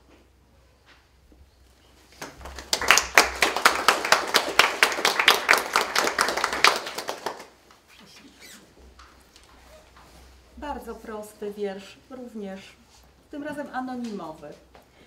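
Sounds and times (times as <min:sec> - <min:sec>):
audience applauding: 0:02.2 - 0:07.6.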